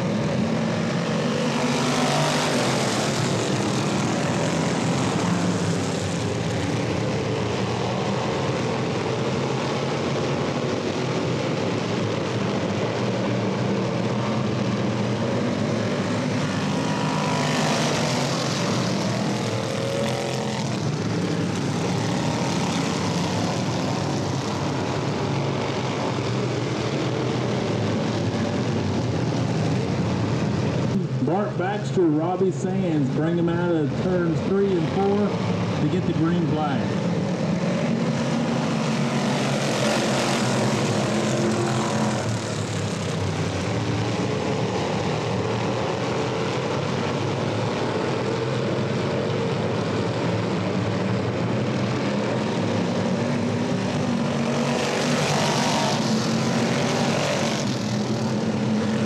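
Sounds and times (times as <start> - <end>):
race car engines droning: 0.0 - 59.0.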